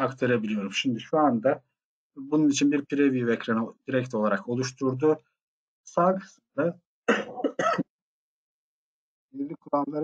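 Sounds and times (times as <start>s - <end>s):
man clearing his throat: 7.1s - 7.8s.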